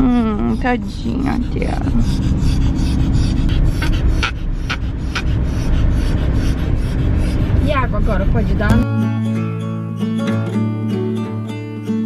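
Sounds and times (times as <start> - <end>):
small dog panting: 0.0 - 8.4
car road and engine rumble: 0.0 - 9.1.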